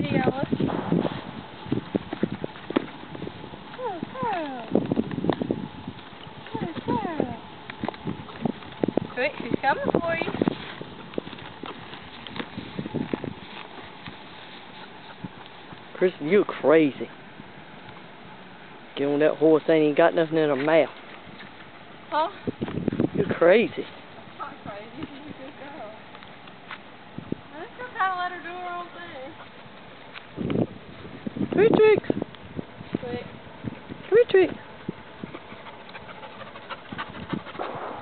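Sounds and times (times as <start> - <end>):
horse hoof steps: 0.0 - 16.3, 33.6 - 38.0.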